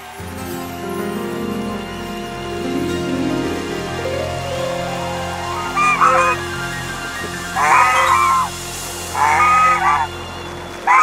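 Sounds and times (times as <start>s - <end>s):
soft background music: 0.0s - 11.0s
geese honking: 1.1s - 11.0s.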